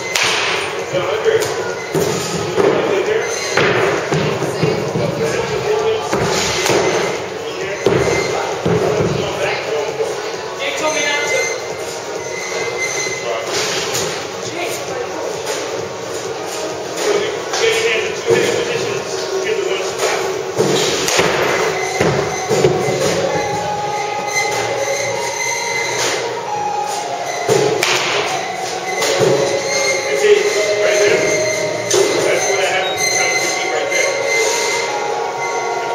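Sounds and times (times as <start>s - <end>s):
bats hitting baseballs: 0.0s - 0.8s, 20.0s - 23.3s, 27.4s - 29.6s
indistinct voices: 0.0s - 35.9s.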